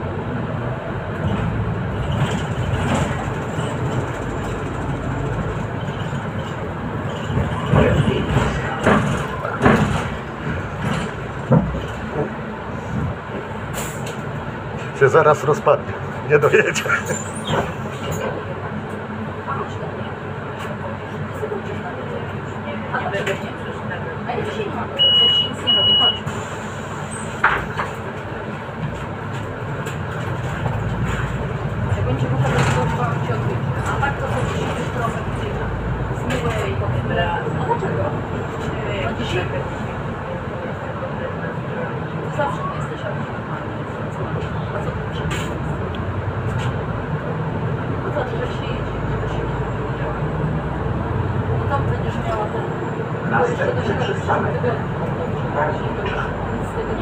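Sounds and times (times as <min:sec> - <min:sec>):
bus drivetrain and road rumble: 0:00.0 - 0:57.0
short high beeps: 0:25.0 - 0:26.2.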